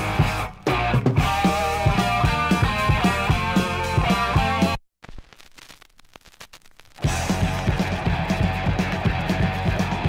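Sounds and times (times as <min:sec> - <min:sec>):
vinyl hiss: 0:00.0 - 0:08.8
vinyl crackles and pops: 0:00.0 - 0:09.2.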